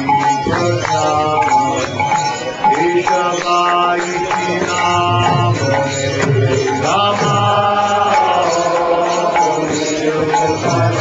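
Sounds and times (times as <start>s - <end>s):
devotional chanting: 0.0s - 11.0s
instrumental accompaniment: 0.0s - 11.0s.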